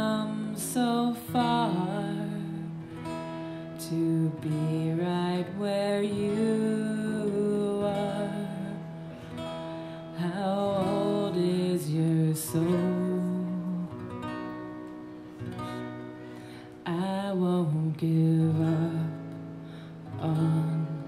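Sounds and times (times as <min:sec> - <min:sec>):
woman singing: 0:00.0 - 0:09.3, 0:10.0 - 0:14.2, 0:16.8 - 0:21.0
acoustic guitar strummed chords: 0:00.0 - 0:21.0.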